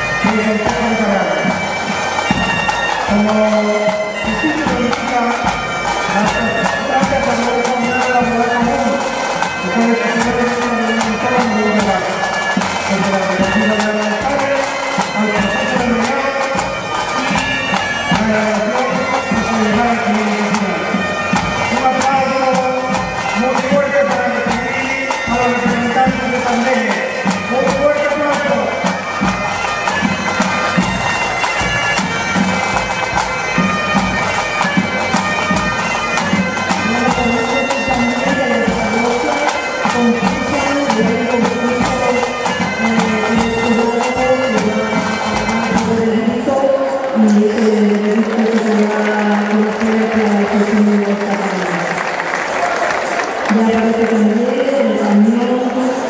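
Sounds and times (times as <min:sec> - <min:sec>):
marching drums: 0:00.0 - 0:46.5
bagpipes playing melody: 0:00.0 - 0:56.0.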